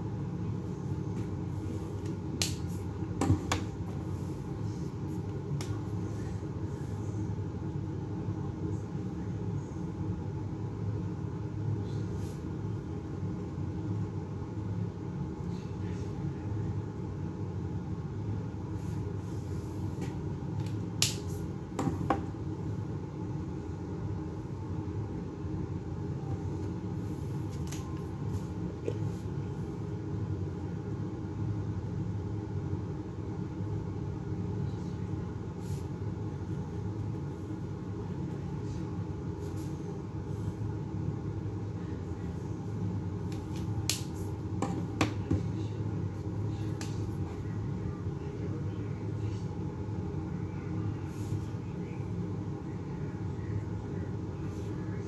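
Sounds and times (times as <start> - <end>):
low room hum: 0.0 - 55.0.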